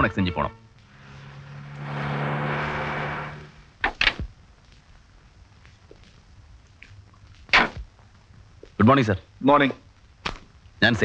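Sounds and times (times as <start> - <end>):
car engine and tyres humming: 0.6 - 4.6.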